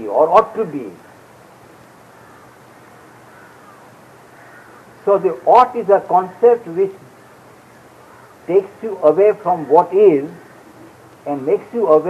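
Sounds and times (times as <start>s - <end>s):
low steady hiss: 0.0s - 12.0s
distant bird calls: 0.6s - 12.0s.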